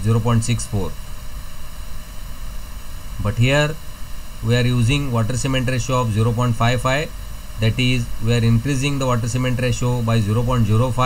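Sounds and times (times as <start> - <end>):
low hum: 0.0 - 11.0
steady background hiss: 0.0 - 11.0.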